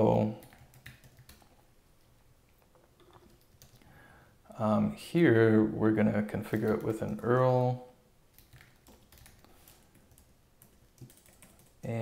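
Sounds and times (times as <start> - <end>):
typing on computer keyboard: 0.3 - 1.6, 3.0 - 3.8, 6.5 - 7.3, 8.3 - 12.0.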